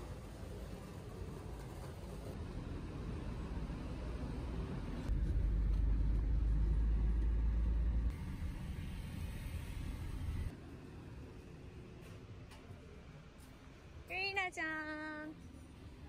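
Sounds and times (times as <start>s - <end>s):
road traffic rumble: 0.0s - 14.2s.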